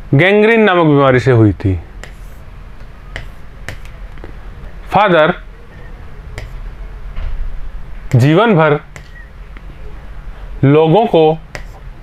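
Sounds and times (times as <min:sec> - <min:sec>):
low room hum: 0:00.0 - 0:12.0
pen tapping on a screen: 0:03.1 - 0:04.0, 0:06.4 - 0:06.6, 0:08.9 - 0:09.2, 0:11.5 - 0:11.8.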